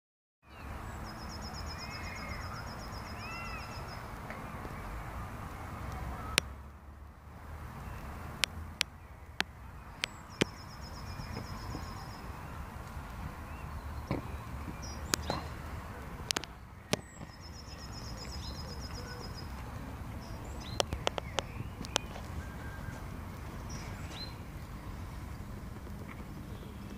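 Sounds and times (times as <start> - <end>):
sharp clicks: 14.9 - 15.6, 20.6 - 22.2.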